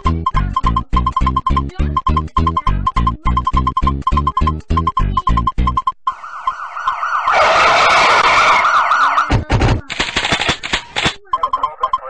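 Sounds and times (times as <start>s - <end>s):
siren yelping: 6.1s - 9.5s.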